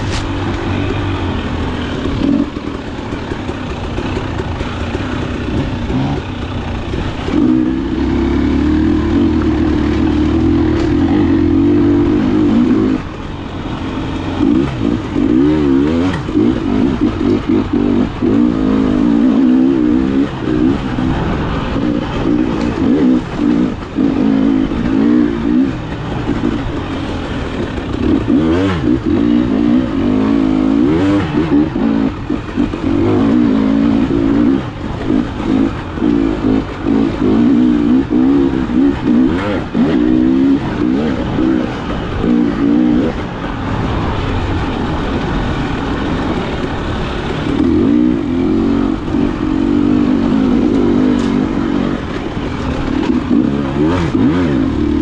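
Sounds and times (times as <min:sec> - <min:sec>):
two-stroke motorcycle engine revving: 0:00.0 - 0:55.0.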